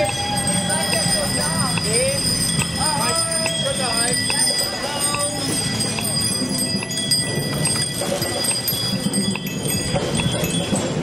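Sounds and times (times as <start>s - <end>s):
bicycle bells ringing: 0.0s - 11.0s.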